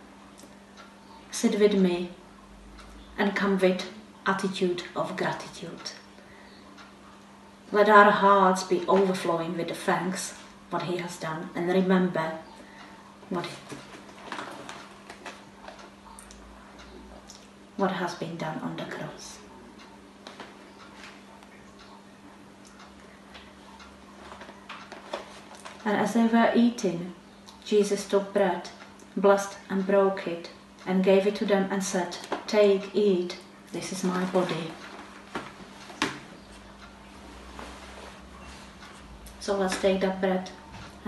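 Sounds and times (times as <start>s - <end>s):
low electrical hum: 0.0s - 41.0s.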